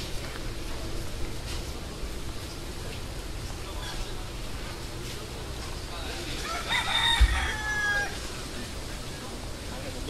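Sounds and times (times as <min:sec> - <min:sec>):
street ambience: 0:00.0 - 0:10.0
rooster crowing: 0:06.4 - 0:08.3.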